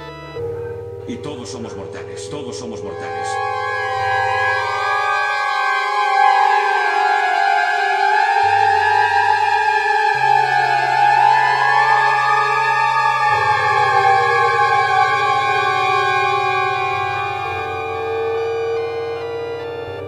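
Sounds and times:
gliding synthesizer tones: 0.0 - 20.0
low bass note: 0.0 - 20.0.

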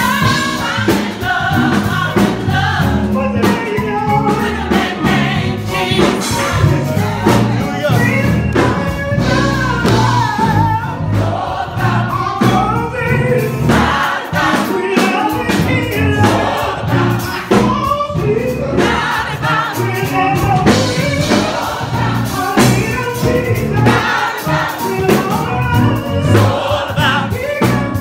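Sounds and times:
gospel choir singing: 0.0 - 28.0.

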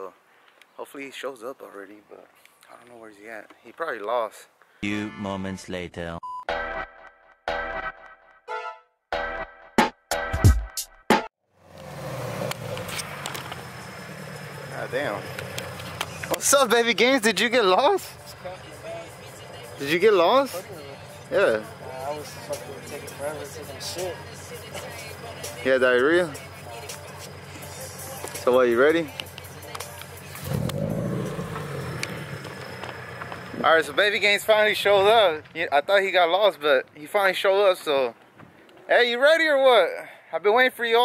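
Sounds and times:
car engine idling: 11.6 - 34.9.

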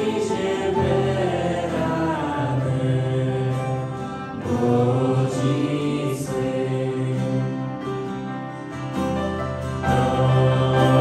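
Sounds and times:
group singing sustained notes: 0.0 - 8.3, 9.7 - 11.0
acoustic guitars: 0.0 - 11.0
keyboard: 0.0 - 11.0.

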